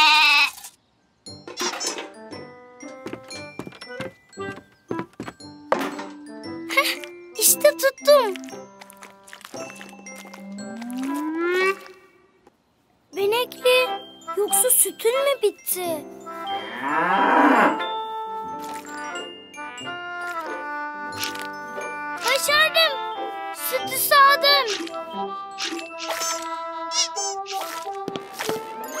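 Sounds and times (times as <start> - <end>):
cheerful cartoon music: 1.2 - 12.0, 13.1 - 29.0.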